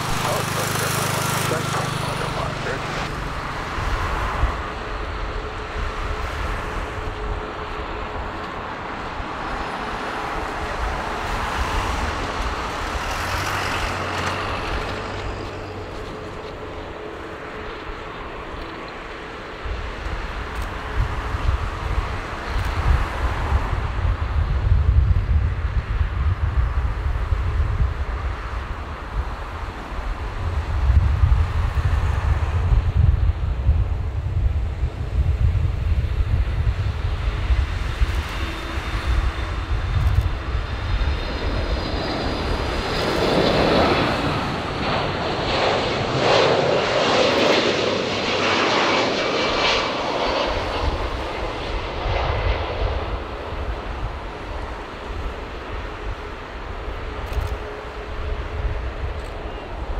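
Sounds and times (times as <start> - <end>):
jet engines whining: 0.0 - 24.0, 33.5 - 59.9.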